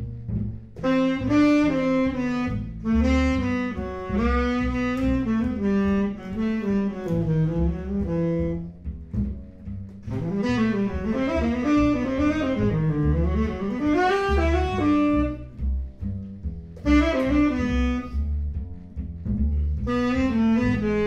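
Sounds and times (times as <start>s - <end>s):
double bass low notes: 0.0s - 21.0s
tenor saxophone melody: 0.8s - 8.8s, 10.0s - 15.6s, 16.8s - 18.5s, 19.8s - 21.0s.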